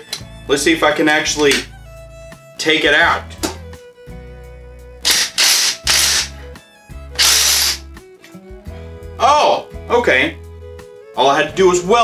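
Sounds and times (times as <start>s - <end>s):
impact driver bursts: 5.0s - 6.4s, 7.2s - 7.8s.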